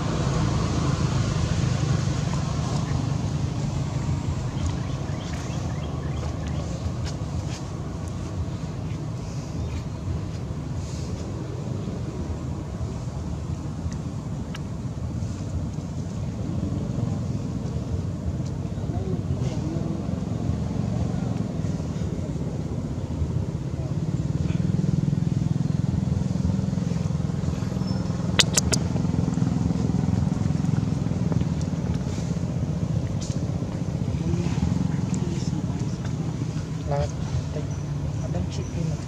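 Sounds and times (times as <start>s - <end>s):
low motor rumble: 0.0s - 39.0s
sharp click: 28.4s - 28.8s.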